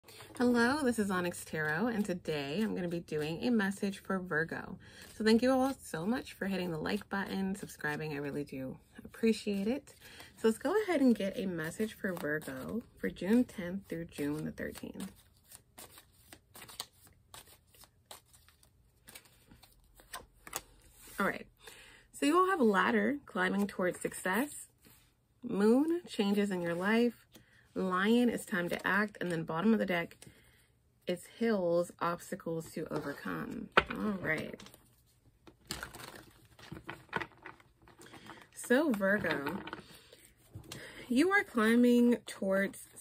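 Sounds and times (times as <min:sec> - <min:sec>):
cards being shuffled: 0:11.7 - 0:21.2, 0:33.0 - 0:40.8.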